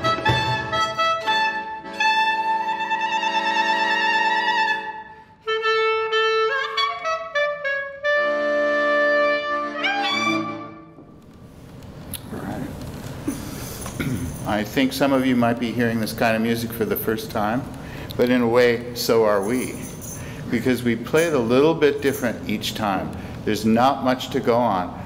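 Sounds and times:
violin: 0.0 - 5.9, 9.0 - 11.0
accordion: 0.0 - 11.0
clarinet: 0.0 - 11.0.

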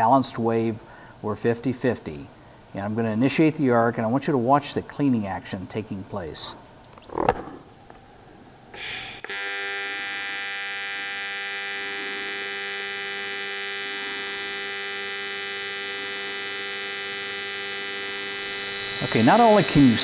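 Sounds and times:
welding arc buzzing: 9.2 - 20.0.

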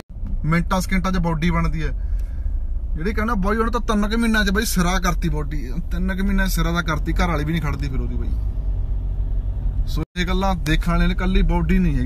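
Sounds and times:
man talking: 0.0 - 2.0, 3.0 - 8.4, 9.9 - 12.0
car rumble from inside cabin: 0.0 - 12.0.

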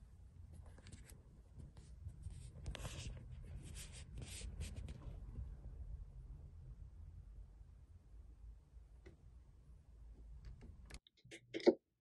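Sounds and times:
scratchy rubbing and rustling: 0.6 - 5.0.

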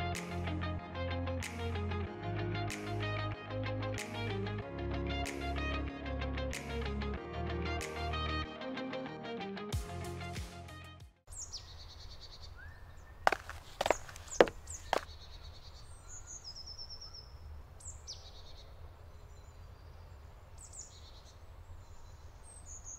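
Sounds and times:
music: 0.0 - 11.2
songbirds chirping and trilling: 11.3 - 22.9.

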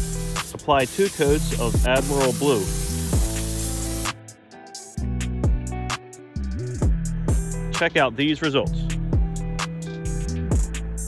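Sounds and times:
spray gun hissing: 0.0 - 4.2
background music: 0.0 - 11.0.

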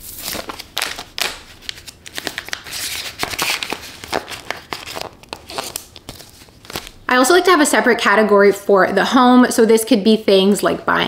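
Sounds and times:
plastic crinkling and rustling: 0.0 - 7.0.

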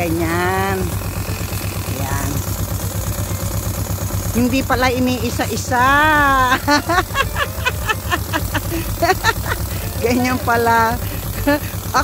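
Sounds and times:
tractor engine idling: 0.0 - 12.0.

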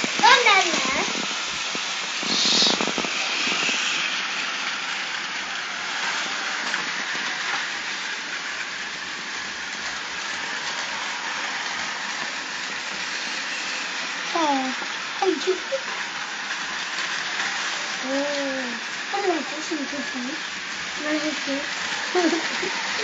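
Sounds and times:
toy train motors whirring: 0.0 - 23.0.

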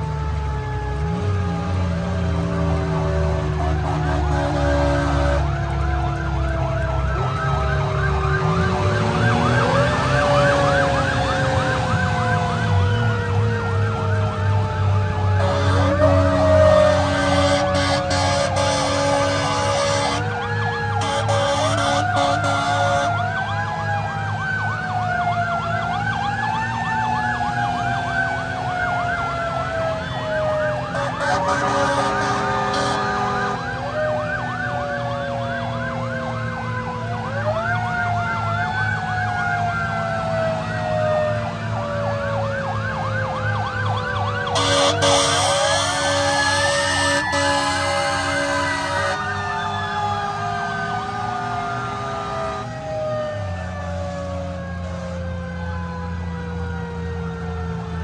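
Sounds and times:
diesel engine rumbling: 0.0 - 58.0
mechanical siren wailing: 0.0 - 58.0
warbling electronic siren: 0.0 - 58.0
horn blasts: 3.0 - 5.7, 15.3 - 20.3, 21.0 - 23.2, 30.9 - 33.9, 44.5 - 49.3.

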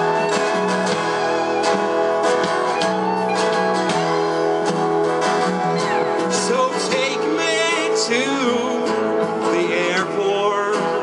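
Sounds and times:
drums: 0.0 - 11.0
keyboard: 0.0 - 11.0
strummed guitar: 0.0 - 11.0.

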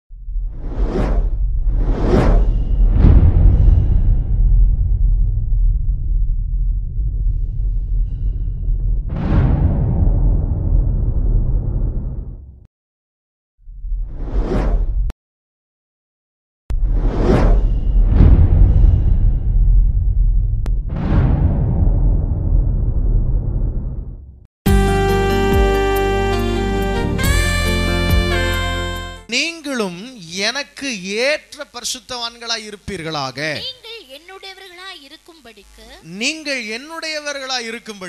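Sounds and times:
deep steady rumble: 0.1 - 12.6, 16.7 - 24.4
whoosh sound effect: 0.5 - 4.8.

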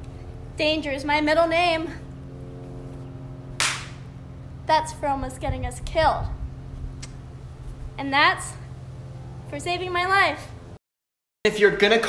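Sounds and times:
hand slapping a face: 3.6 - 4.1.

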